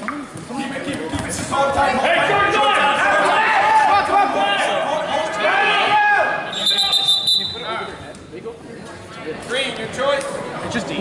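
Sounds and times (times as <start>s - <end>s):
people shouting: 2.1s - 6.7s.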